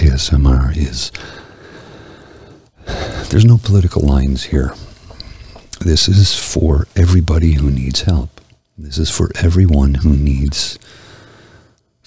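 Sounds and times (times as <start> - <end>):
man breathing in: 1.1 - 3.3, 10.8 - 12.0.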